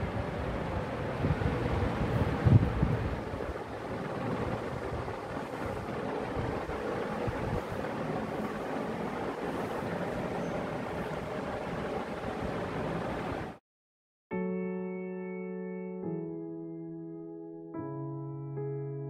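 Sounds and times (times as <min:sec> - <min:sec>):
steady rushing noise: 0:00.0 - 0:13.6.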